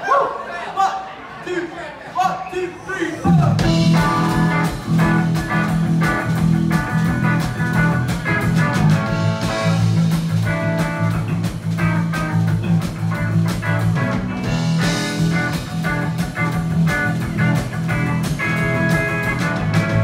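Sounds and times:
bass guitar: 3.2s - 20.0s
drum kit: 3.2s - 20.0s
electric guitar: 3.5s - 20.0s.

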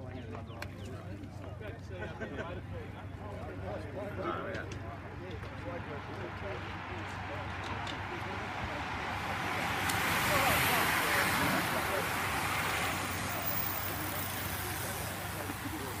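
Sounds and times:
spectators' voices: 0.0s - 16.0s
bicycles sprinting past: 5.4s - 16.0s.

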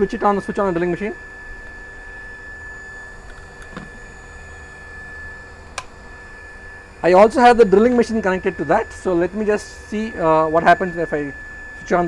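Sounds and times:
electrical equipment hum and whine: 0.0s - 12.0s.

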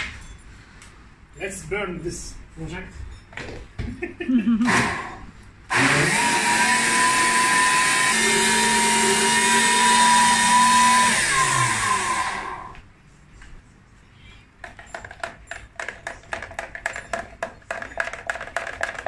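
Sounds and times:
electric blender running: 4.6s - 12.8s.

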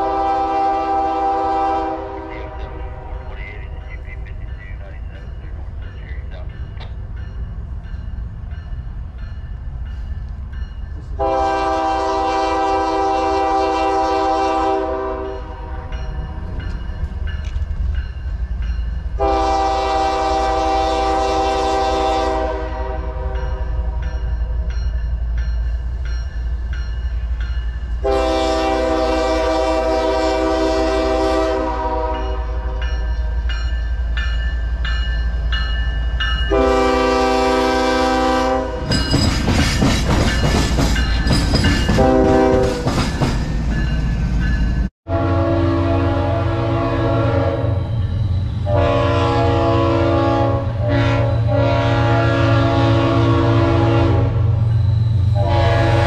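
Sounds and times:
train air horn blasts: 0.0s - 3.6s, 11.2s - 16.0s, 19.2s - 24.0s, 28.0s - 32.8s, 36.5s - 39.0s, 41.9s - 43.0s, 45.1s - 48.0s, 48.6s - 54.6s, 55.3s - 56.0s
train wheels passing: 0.0s - 56.0s
locomotive engine rumble: 1.3s - 13.0s.

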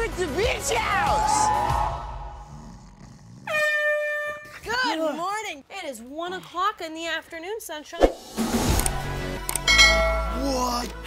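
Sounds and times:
music track: 8.4s - 11.0s.

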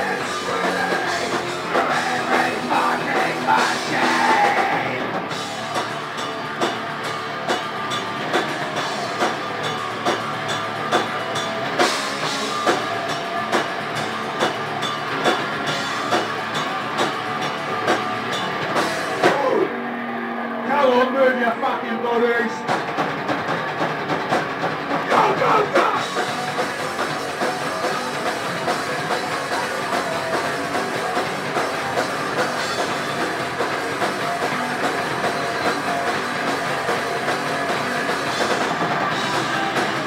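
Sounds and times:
drum and cymbal hits: 0.0s - 19.7s, 22.6s - 40.0s
metal band playing live: 0.0s - 40.0s.

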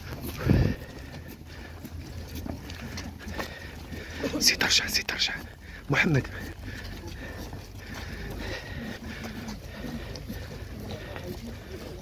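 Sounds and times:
crowd footsteps ticking: 0.0s - 12.0s.

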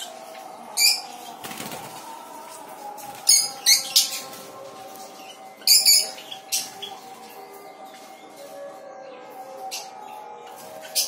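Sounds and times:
parrots giving shrill calls: 5.6s - 6.7s.

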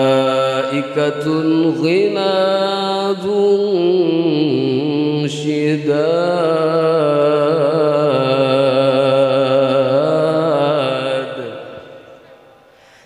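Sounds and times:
boy reciting melodically into microphone: 0.0s - 11.6s.

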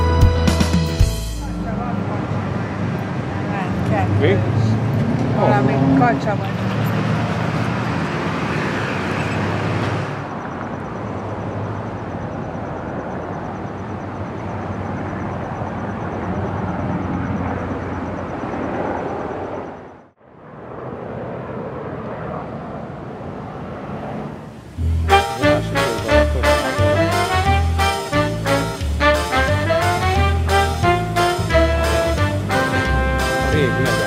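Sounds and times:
outdoor background noise: 1.4s - 32.9s.

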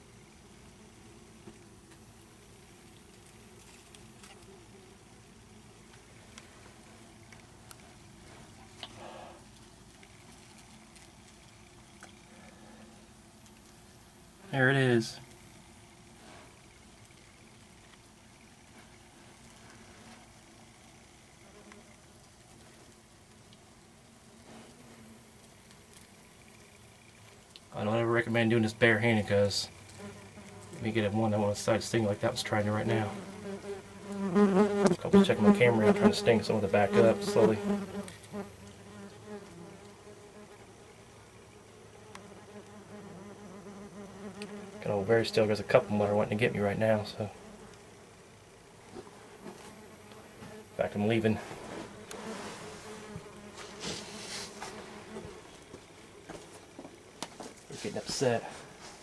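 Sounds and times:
low hiss: 0.0s - 59.0s
yellow jackets buzzing: 0.0s - 59.0s.

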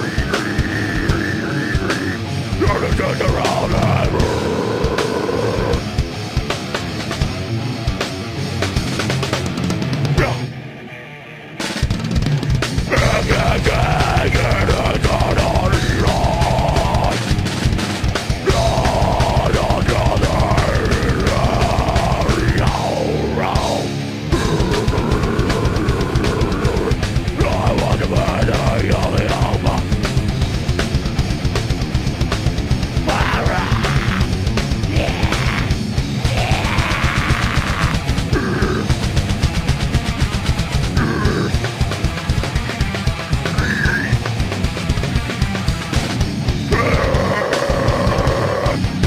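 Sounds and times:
person singing: 0.0s - 5.8s, 12.9s - 17.2s, 18.4s - 30.0s, 33.0s - 38.9s, 46.7s - 48.9s
pounding drum kit: 0.0s - 10.5s, 11.6s - 49.0s
distorted electric guitars: 0.0s - 49.0s
live heavy metal band: 0.0s - 49.0s.

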